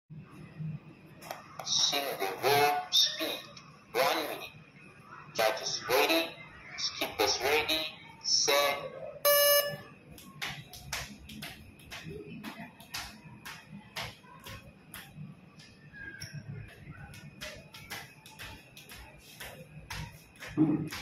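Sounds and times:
skipping rope slapping concrete: 10.2s - 21.0s.

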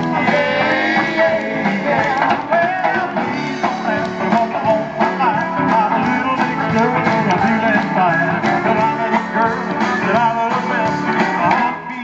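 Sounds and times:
bass guitar: 0.0s - 12.0s
drums: 0.0s - 12.0s
electric guitar: 0.0s - 12.0s
keyboard: 0.0s - 12.0s.

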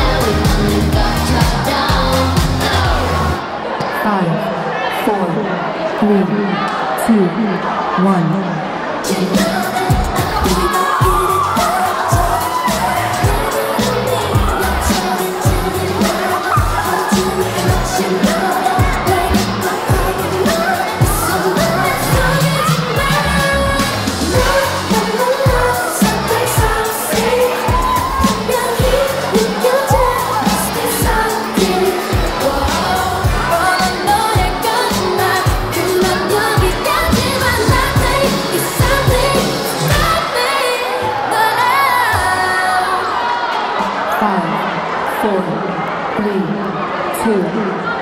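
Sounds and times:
steady beat: 0.0s - 3.4s, 9.2s - 40.2s
pop song with singing: 0.0s - 48.0s.

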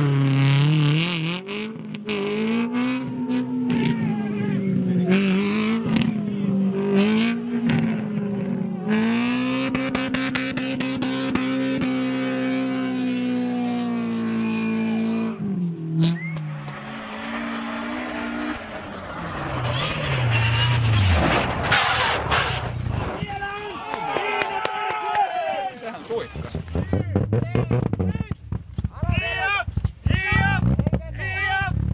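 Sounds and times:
rally car engine revving: 0.0s - 23.4s, 26.1s - 31.9s
passing rally car engine: 0.0s - 24.1s, 26.0s - 31.9s
rush of tyres on snow: 13.6s - 26.8s.

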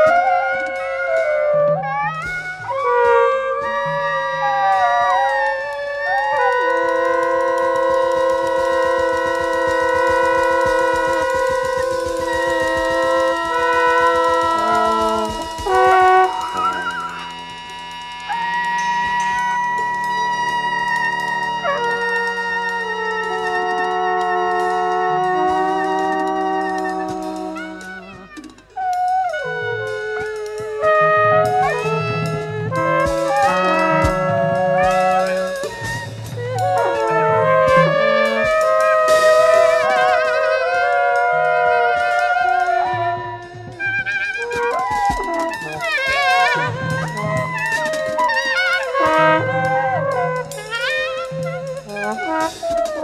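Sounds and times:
fast light drum patter: 0.0s - 53.0s
free jazz ensemble: 0.0s - 53.0s
long sliding horn note: 0.0s - 53.0s
voice: 21.7s - 53.0s.

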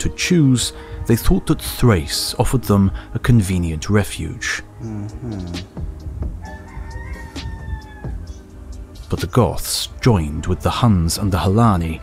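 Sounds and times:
steady low drone: 0.7s - 6.4s.

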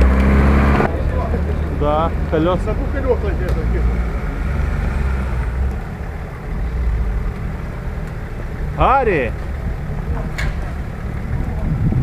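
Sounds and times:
engine running at low revs: 0.0s - 12.0s.

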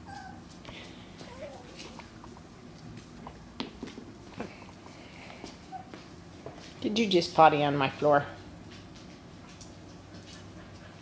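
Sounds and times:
puppy whimpering: 0.0s - 0.5s, 1.2s - 2.1s, 5.6s - 6.0s.

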